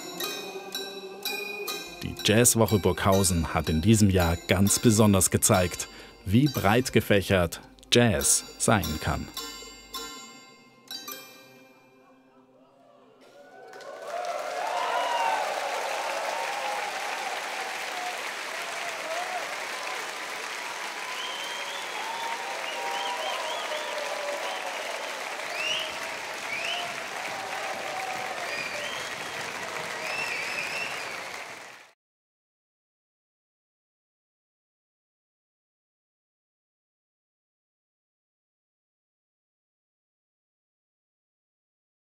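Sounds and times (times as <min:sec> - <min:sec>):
audience applauding: 0:13.2 - 0:32.0
audience shouts and whistles: 0:13.3 - 0:31.6.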